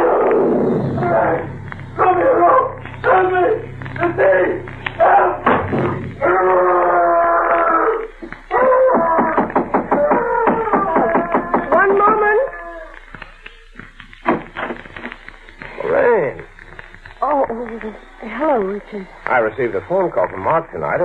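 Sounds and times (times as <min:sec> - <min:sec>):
man screaming and wailing: 0:06.2 - 0:11.9.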